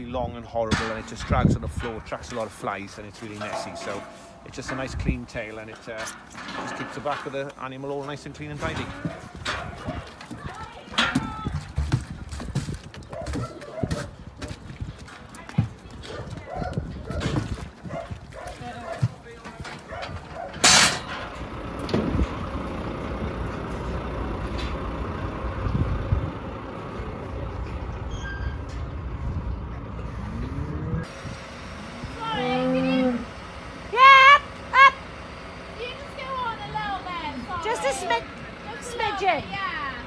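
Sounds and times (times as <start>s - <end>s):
diesel engine rumble: 0.0s - 40.0s
metal gates clanking: 0.7s - 9.9s, 19.4s - 22.4s, 27.6s - 29.0s.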